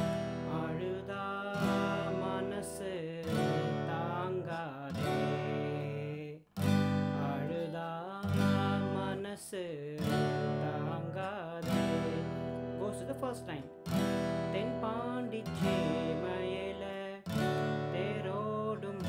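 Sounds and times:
acoustic guitar strumming chords: 0.0s - 19.0s
man singing: 0.0s - 19.0s.

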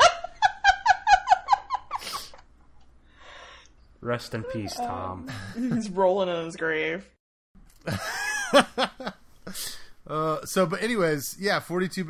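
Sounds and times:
person giggling: 5.3s - 5.9s.

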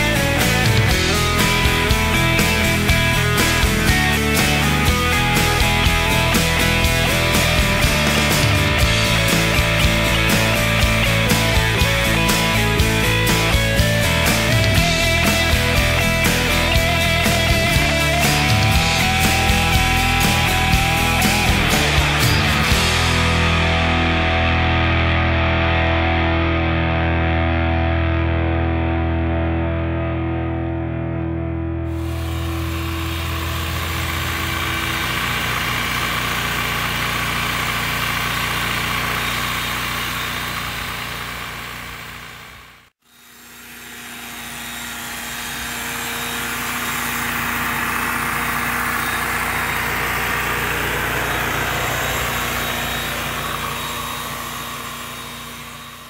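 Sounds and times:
electric clippers buzzing: 0.0s - 29.4s, 31.7s - 56.0s
rock music: 0.0s - 41.3s, 44.8s - 56.0s.

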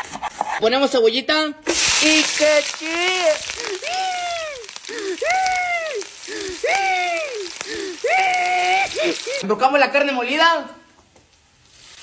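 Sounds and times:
onions sizzling in hot oil: 1.7s - 9.4s, 11.7s - 12.0s.

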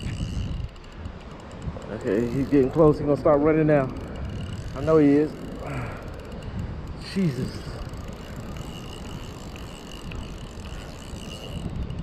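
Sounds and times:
fishing reel gears ticking: 0.0s - 12.0s
wind buffeting microphone: 0.0s - 12.0s.

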